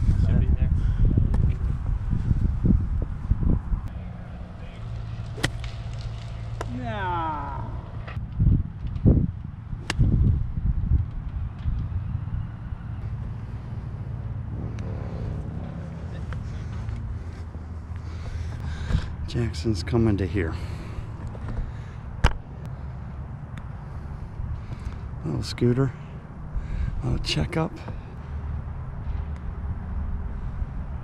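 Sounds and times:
steady low hum: 0.0 - 31.0
golf club striking ball: 5.2 - 6.8.

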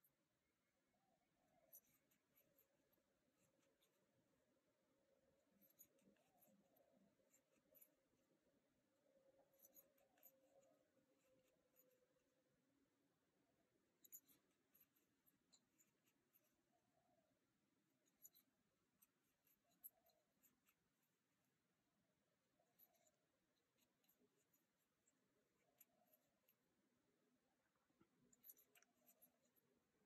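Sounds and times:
crochet hook clicks and scratches: 1.0 - 30.0.

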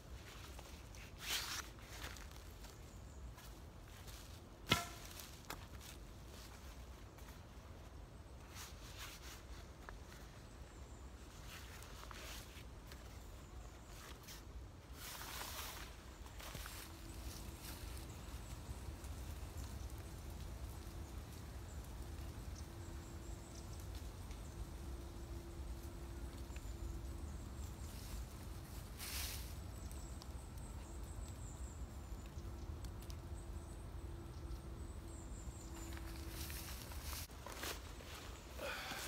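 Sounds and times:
low outdoor rumble: 16.9 - 29.0.

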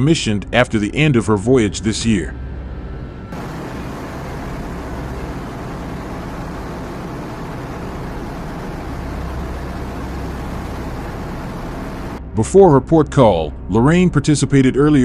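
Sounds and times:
deep low rumble: 3.0 - 12.2
wind and water rushing: 3.4 - 12.2.

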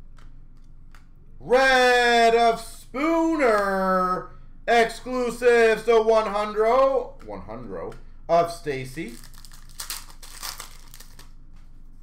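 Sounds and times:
foil wrapper crinkling: 9.0 - 11.4.

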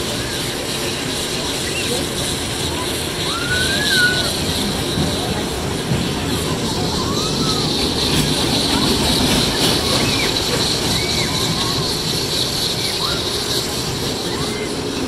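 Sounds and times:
roller coaster cars rumbling: 0.0 - 15.0.

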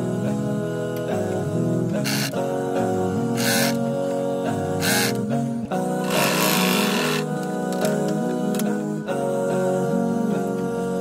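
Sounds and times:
background music: 0.0 - 11.0
sewing machine stitching: 6.1 - 7.3.

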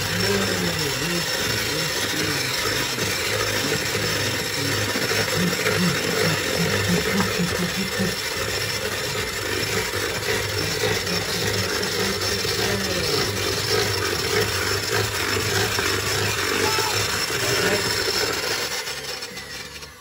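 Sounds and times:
electric hand mixer whisking batter: 0.0 - 20.0.

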